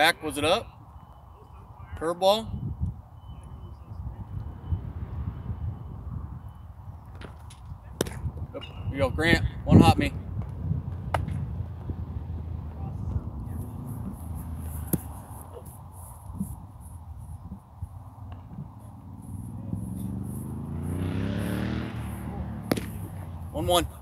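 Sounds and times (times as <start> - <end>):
passing vehicle engine hum: 3.4 - 24.0
baseball knocks: 14.8 - 15.2, 22.6 - 23.3.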